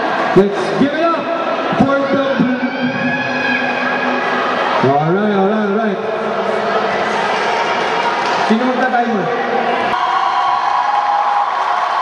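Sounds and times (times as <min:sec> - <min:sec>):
crowd noise: 0:00.0 - 0:12.0
cheering squad long shout: 0:01.0 - 0:05.2, 0:09.4 - 0:12.0.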